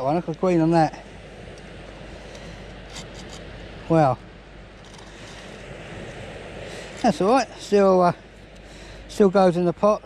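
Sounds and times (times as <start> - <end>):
rush on a shingle beach: 0.0 - 10.0.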